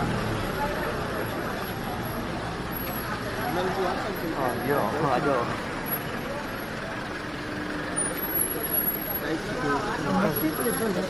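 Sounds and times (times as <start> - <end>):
cars rolling slowly: 0.0 - 11.0
crowd voices: 0.0 - 11.0.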